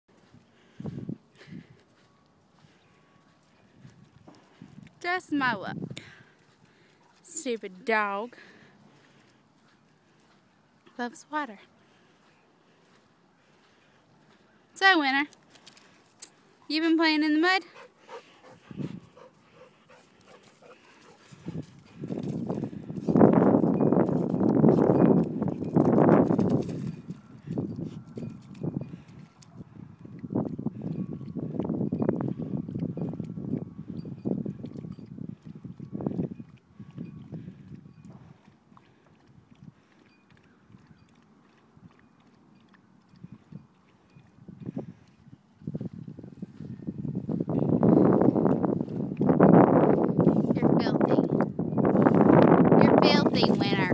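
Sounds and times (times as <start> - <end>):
dog lapping water: 34.4 - 45.2.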